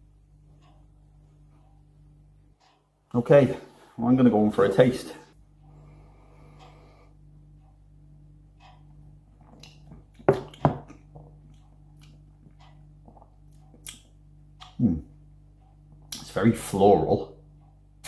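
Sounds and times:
low electrical hum: 0.0 - 18.0
mouth smacks and ticks: 9.4 - 14.8
man gulping: 13.0 - 13.9.

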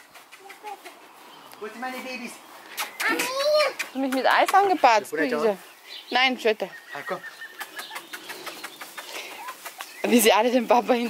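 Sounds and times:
puppies scampering on grass: 0.0 - 11.0.

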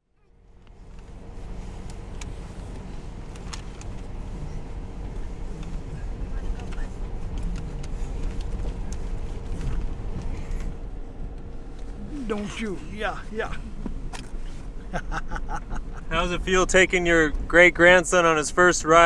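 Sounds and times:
vehicle engine and road rumble: 0.0 - 19.0.

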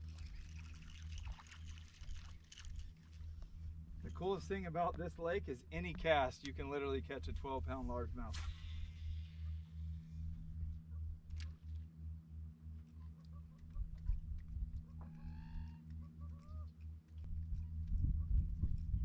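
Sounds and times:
low pulsing hum: 0.0 - 19.0.

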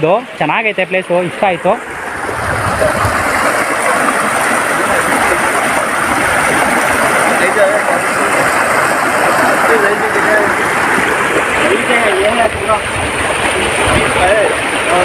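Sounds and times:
river water rushing over rocks: 0.8 - 15.0.

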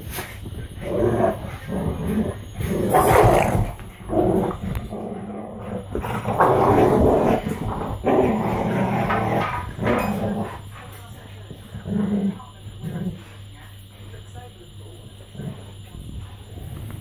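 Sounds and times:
dogs growling in play: 0.0 - 13.5, 15.1 - 17.0.

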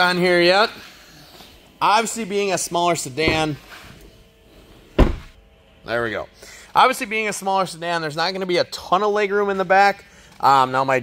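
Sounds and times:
car door thunk: 5.0 - 5.4.

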